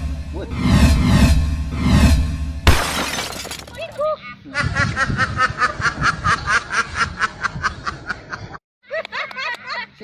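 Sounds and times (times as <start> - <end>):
glass shattering: 2.7 - 4.0.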